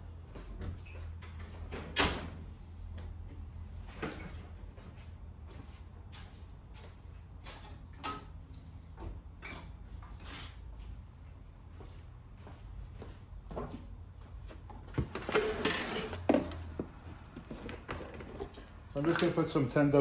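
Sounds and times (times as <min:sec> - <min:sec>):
objects knocking and clattering: 0:14.7 - 0:19.2.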